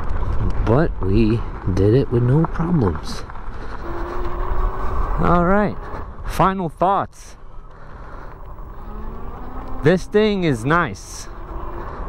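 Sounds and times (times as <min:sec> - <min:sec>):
wind rumble on microphone: 0:00.0 - 0:06.3
tyres rolling over pavement: 0:00.0 - 0:06.4, 0:07.7 - 0:12.0
electric motor whine: 0:03.7 - 0:06.0, 0:08.3 - 0:12.0.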